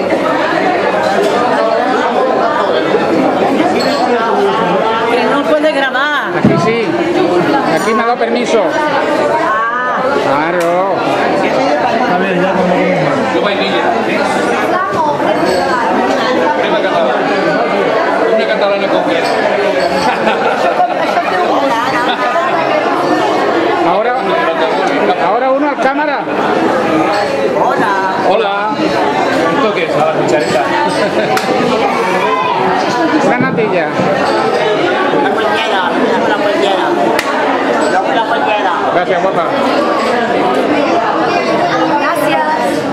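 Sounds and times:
people chattering: 0:00.0 - 0:42.9
people laughing: 0:19.5 - 0:23.5, 0:28.9 - 0:33.2.

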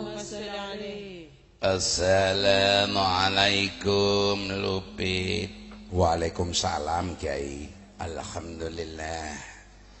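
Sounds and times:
man chanting: 0:01.6 - 0:09.7.

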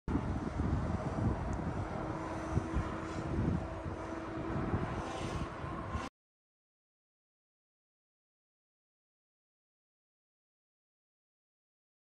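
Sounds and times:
faint engine-like hum: 0:00.1 - 0:06.1
wind buffeting microphone: 0:00.1 - 0:06.1.

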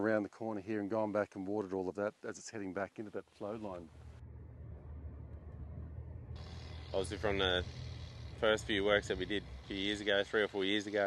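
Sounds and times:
vehicle engine rumble: 0:03.7 - 0:11.0.

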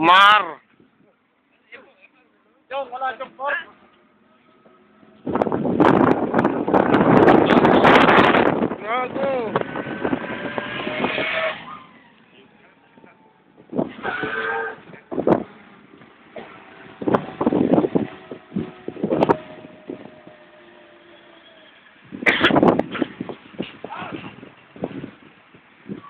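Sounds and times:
road vehicle noise: 0:00.0 - 0:26.0.

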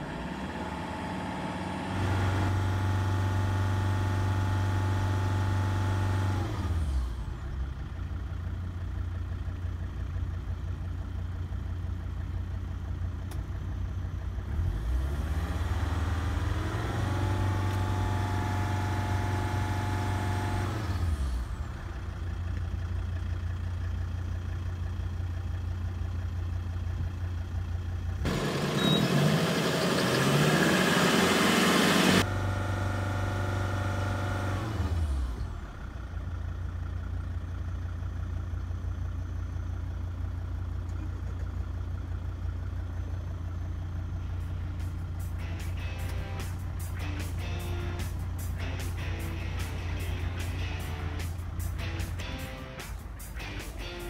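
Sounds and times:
car engine dropping to idle: 0:35.1 - 0:54.0
music with strummed guitar: 0:45.4 - 0:54.0.

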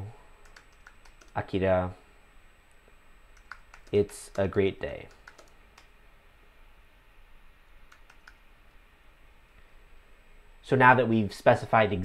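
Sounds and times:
faint keyboard keystrokes: 0:00.4 - 0:01.4, 0:03.4 - 0:05.9, 0:07.9 - 0:08.4.

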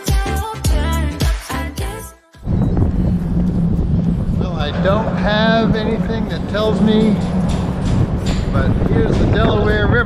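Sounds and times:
wind on microphone: 0:02.4 - 0:10.0
low hum: 0:02.5 - 0:10.0
road rumble: 0:02.5 - 0:10.0
man talking: 0:04.4 - 0:07.3, 0:08.4 - 0:10.0.

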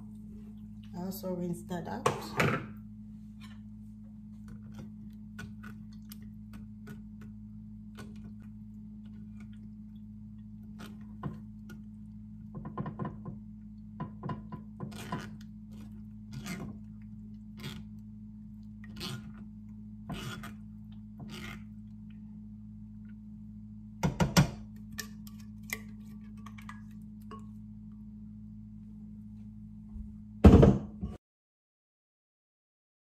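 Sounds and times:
steady low hum: 0:00.0 - 0:31.2.

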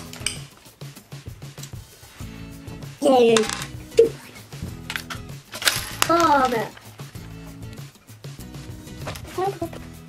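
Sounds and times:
background music: 0:00.0 - 0:10.0
child's voice: 0:03.0 - 0:03.6, 0:06.0 - 0:06.8, 0:09.2 - 0:09.8.

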